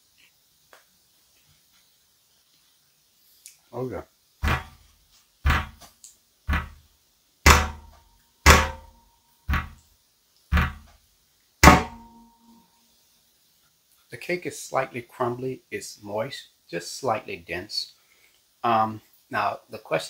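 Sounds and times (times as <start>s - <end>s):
fist pounding on table: 4.4s - 4.8s, 5.5s - 5.8s, 6.5s - 6.8s, 7.5s - 9.8s, 10.5s - 10.9s, 11.6s - 12.1s.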